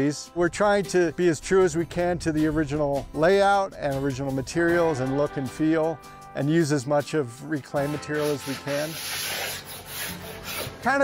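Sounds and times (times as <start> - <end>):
soft background music: 0.0 - 11.0
trowel scraping plaster: 8.0 - 10.8.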